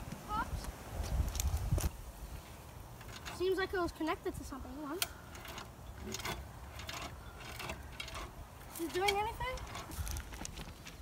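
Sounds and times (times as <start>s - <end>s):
wind rumbling on microphone: 0.0s - 4.8s
child speaking: 0.3s - 0.6s, 3.3s - 5.1s, 8.8s - 9.7s.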